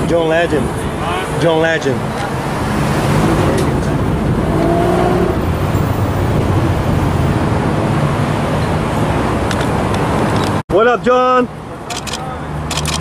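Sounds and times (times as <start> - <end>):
traffic noise: 0.0 - 13.0.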